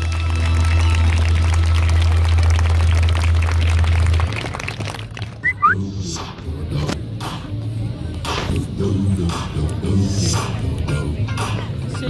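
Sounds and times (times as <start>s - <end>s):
dance music over loudspeakers: 5.4s - 12.0s.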